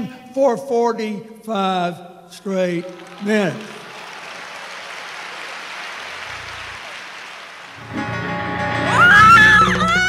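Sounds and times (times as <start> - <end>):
audience applauding: 2.8 - 10.0.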